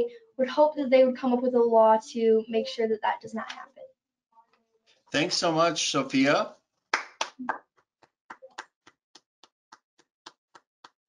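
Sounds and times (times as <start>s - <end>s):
hands clapping: 6.9s - 11.0s.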